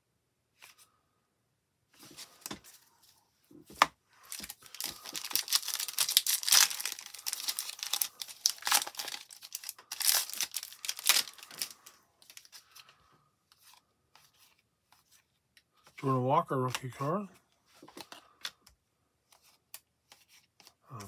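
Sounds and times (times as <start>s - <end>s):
wrapper tearing and crinkling: 4.3s - 12.5s.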